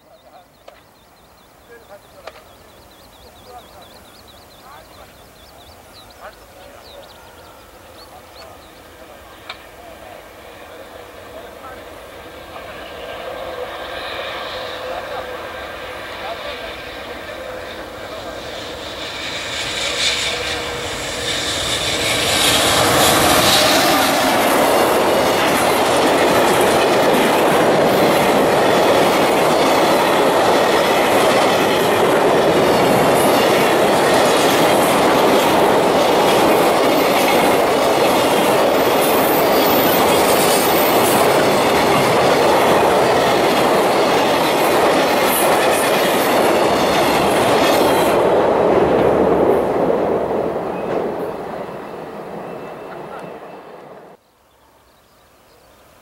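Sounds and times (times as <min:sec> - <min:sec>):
freight train passing: 0:00.0 - 0:54.9.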